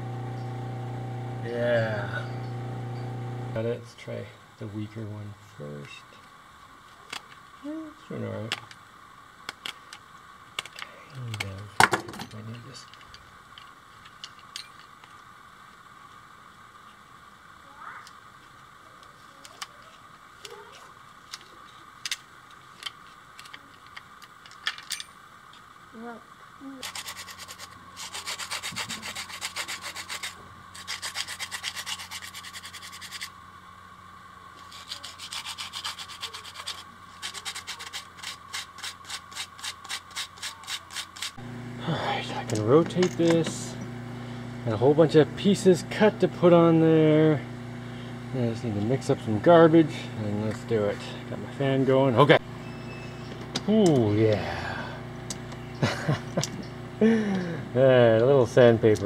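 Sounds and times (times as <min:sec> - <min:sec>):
steady low hum: 0:00.0 - 0:59.0
hand sanding strokes: 0:26.8 - 0:33.3, 0:34.6 - 0:41.4.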